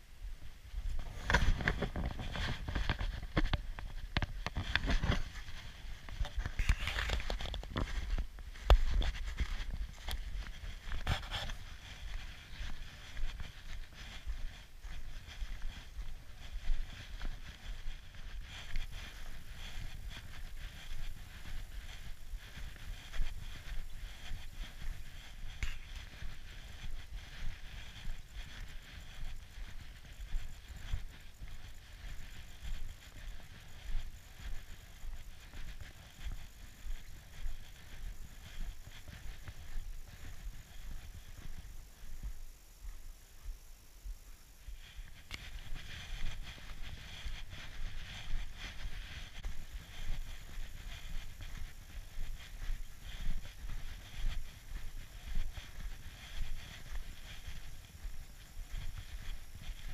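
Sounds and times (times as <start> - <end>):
footsteps crunching in snow: 0.2 - 59.9.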